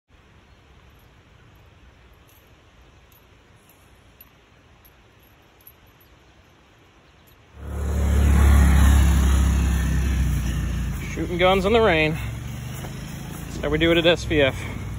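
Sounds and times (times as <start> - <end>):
wind and rain on microphone: 0.1 - 7.6.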